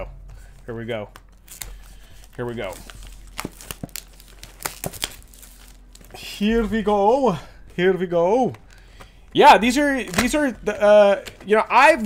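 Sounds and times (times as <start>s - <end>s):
packaging crinkling: 1.2s - 6.4s.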